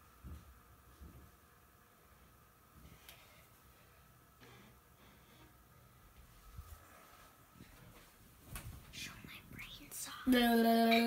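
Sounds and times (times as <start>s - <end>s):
person whispering: 8.9s - 11.0s.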